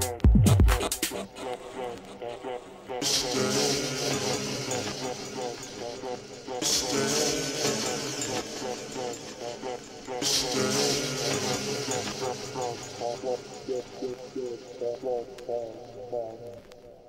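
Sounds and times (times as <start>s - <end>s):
minimal techno music: 0.0s - 2.2s, 3.0s - 17.0s
wavering vocal sample: 0.8s - 17.0s
hissing hi-hat: 3.0s - 16.6s.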